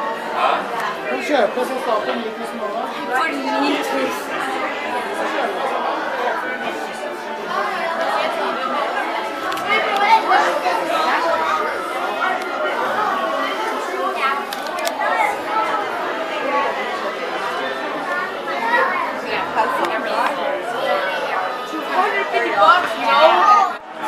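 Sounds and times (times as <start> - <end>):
chatter of many voices: 0.0 - 24.0.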